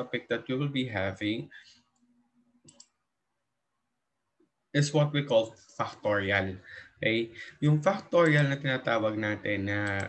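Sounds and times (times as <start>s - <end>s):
computer mouse clicks: 1.9s - 3.0s, 9.8s - 10.0s.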